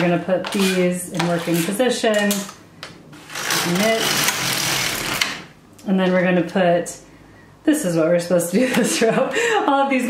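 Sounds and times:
knitting machine carriage clattering: 3.3s - 5.4s.

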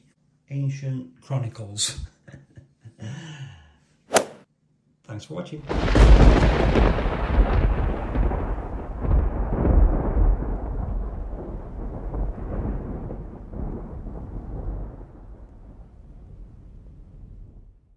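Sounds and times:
rolling thunder rumble: 5.6s - 17.9s.

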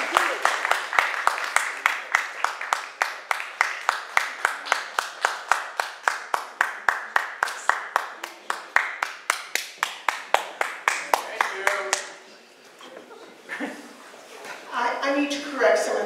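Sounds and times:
small audience clapping: 0.0s - 12.2s.

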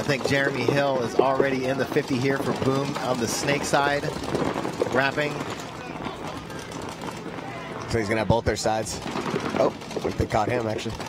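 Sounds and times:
outdoor background noise: 0.0s - 11.0s
faint indistinct voices: 4.9s - 10.9s.

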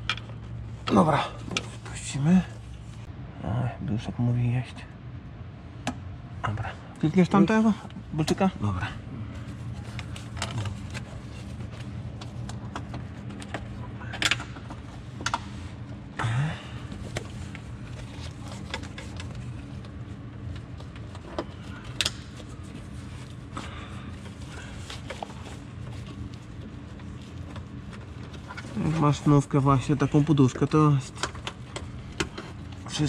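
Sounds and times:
low workshop hum: 0.0s - 33.0s.

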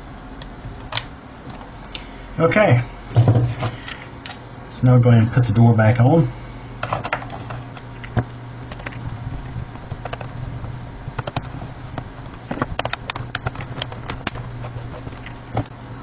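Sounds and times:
low hum: 0.0s - 16.0s.

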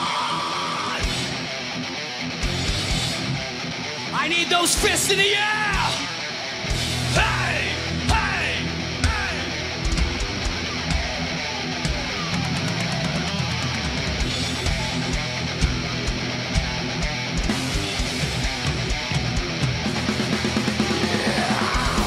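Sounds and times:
metal band playing: 0.0s - 22.0s.

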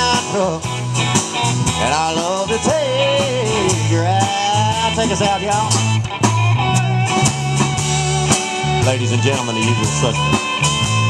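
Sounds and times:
country band playing live: 0.0s - 11.0s
drum hits: 0.0s - 11.0s
man speaking: 8.8s - 10.4s.

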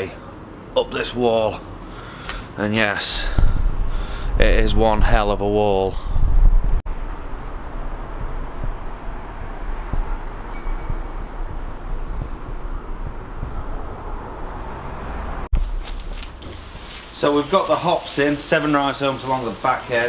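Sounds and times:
outdoor background noise: 0.0s - 20.0s
faint high tone: 10.5s - 11.4s.

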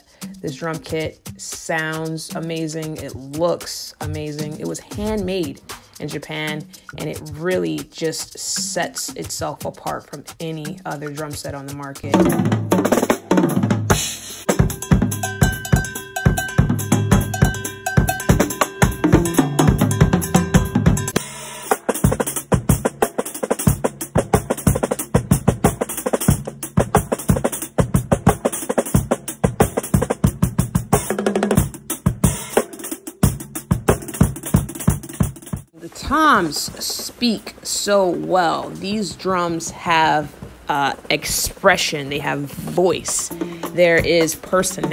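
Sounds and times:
drum kit played fast: 0.0s - 44.9s.

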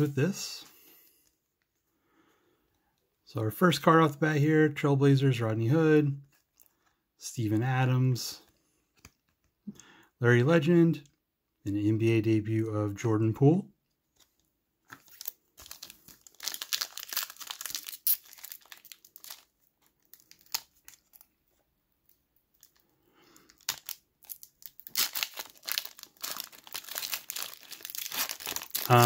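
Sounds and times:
foil wrapper crinkling and tearing: 14.9s - 21.4s, 22.1s - 29.0s.

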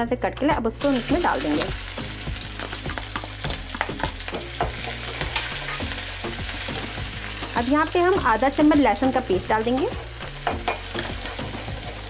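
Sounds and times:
vegetables sizzling in hot oil: 0.8s - 12.0s.

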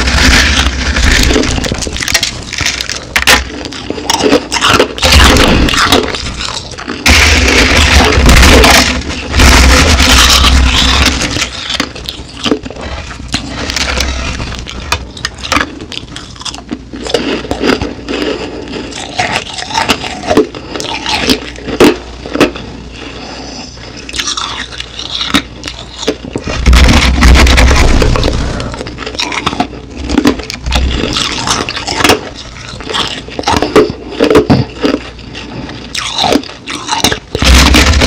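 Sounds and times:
ice being chewed: 0.0s - 38.0s
hands crunching crushed ice: 35.9s - 38.0s.

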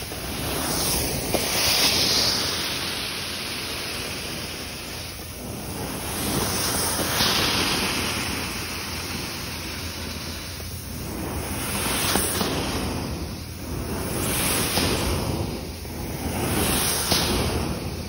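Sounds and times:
carpet cleaner vacuum suction: 0.0s - 18.0s.

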